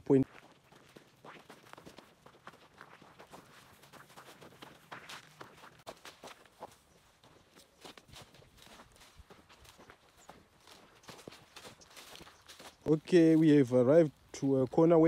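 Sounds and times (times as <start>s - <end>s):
footsteps through dry grass: 0.1s - 15.0s.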